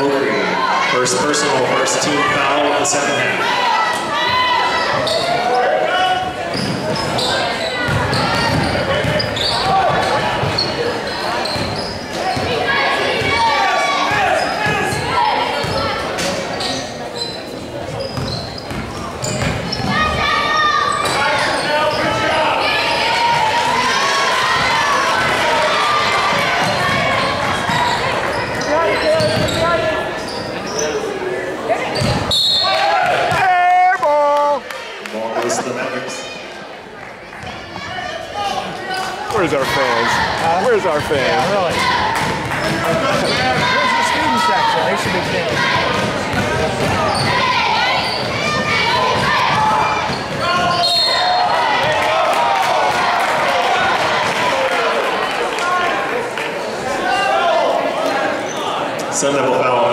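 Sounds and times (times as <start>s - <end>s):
voices calling out: 0.0s - 36.5s, 37.4s - 59.5s.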